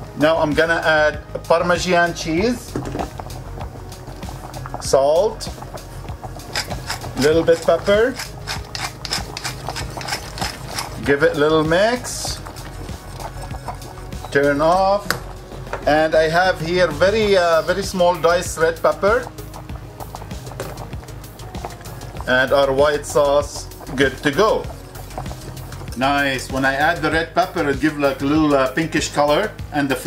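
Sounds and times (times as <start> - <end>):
soft background music: 0.0 - 30.0
whisk stirring in saucepan: 4.2 - 15.2, 16.0 - 28.8
pepper grinder scraping: 6.3 - 11.1, 12.1 - 14.4
wire whisk clicking against pan: 6.5 - 10.9.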